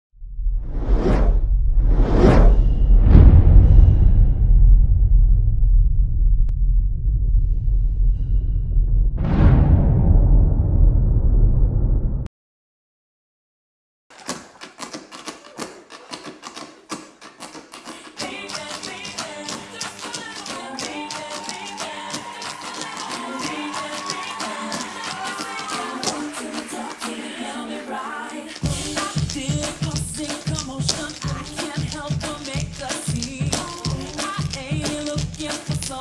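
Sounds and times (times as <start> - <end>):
cinematic whoosh: 0.2 - 12.3
deep steady rumble: 0.2 - 12.3
tap shoes striking a stage: 14.1 - 27.3, 28.3 - 36.0.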